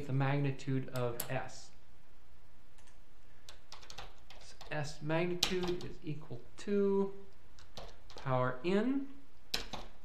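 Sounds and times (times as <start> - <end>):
man speaking: 0.0 - 1.8, 4.4 - 7.2, 8.2 - 9.2
low steady hum: 0.0 - 10.0.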